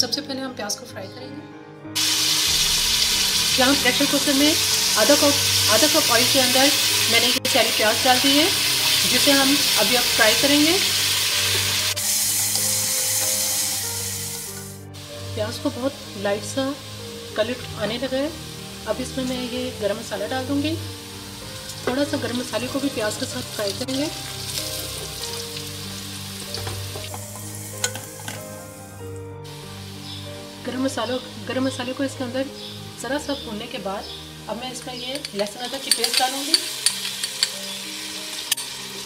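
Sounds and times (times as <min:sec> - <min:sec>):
onions sizzling in hot oil: 0:02.0 - 0:31.8, 0:34.6 - 0:39.0
wooden spoon knocking on pot: 0:26.5 - 0:28.4.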